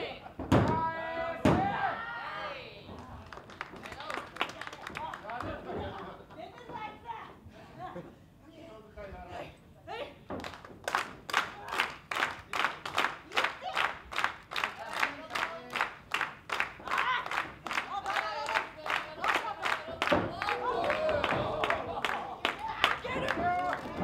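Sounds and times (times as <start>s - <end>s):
audience clapping in rhythm: 3.0s - 6.1s, 10.4s - 24.0s.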